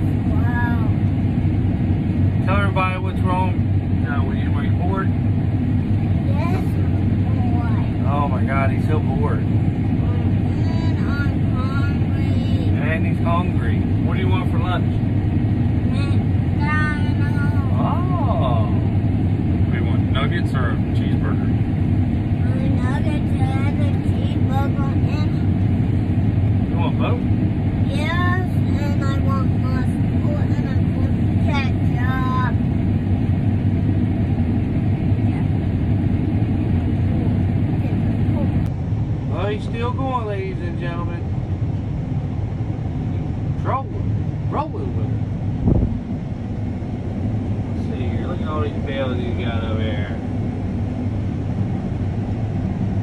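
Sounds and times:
combine harvester droning: 0:00.0 - 0:53.0
muffled talk: 0:06.2 - 0:15.0, 0:15.9 - 0:18.9, 0:22.4 - 0:25.6, 0:26.7 - 0:32.6, 0:47.8 - 0:50.2.

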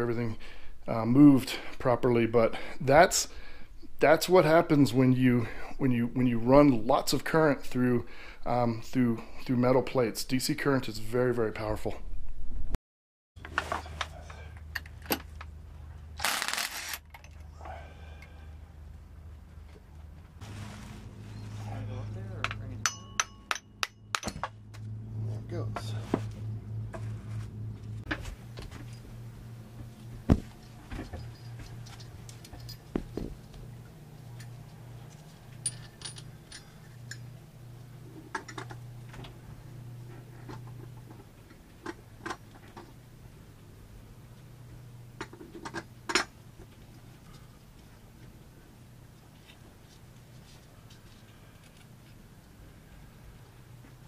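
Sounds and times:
steady low hum: 0:13.7 - 0:54.0
metallic clinks of tools: 0:31.1 - 0:32.9, 0:35.6 - 0:37.2.

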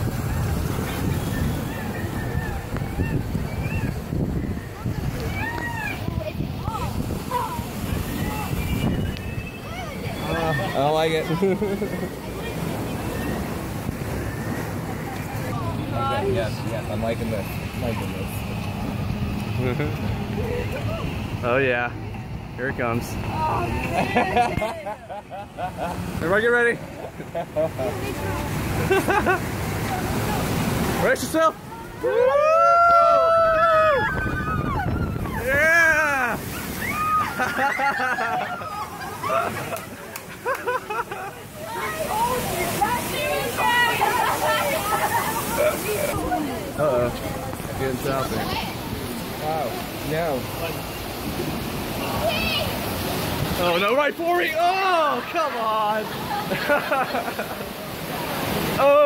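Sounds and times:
wind buffeting microphone: 0:00.0 - 0:22.6, 0:32.9 - 0:37.4
rushing whitewater: 0:00.0 - 0:59.0
people laughing and shrieking: 0:00.8 - 0:13.7, 0:31.8 - 0:46.4, 0:54.6 - 0:57.9.

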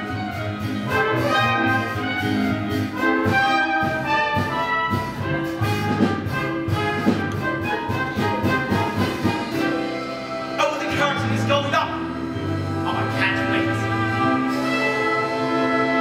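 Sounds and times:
orchestral overture with brass: 0:00.0 - 0:16.0.

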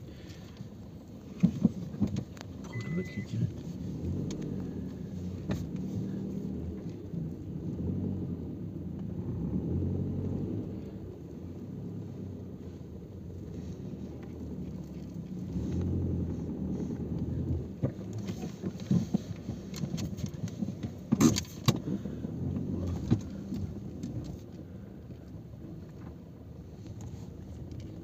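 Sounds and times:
vehicle engine rumbling: 0:00.0 - 0:28.0.

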